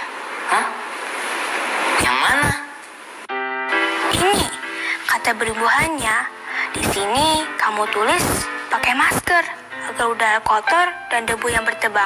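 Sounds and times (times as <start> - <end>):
light background music: 3.3 - 12.0
person speaking: 4.0 - 12.0.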